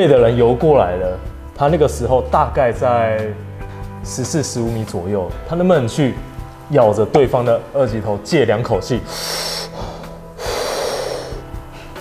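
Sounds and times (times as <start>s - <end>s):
background music: 0.0s - 12.0s
breath through scuba regulator: 9.1s - 12.0s.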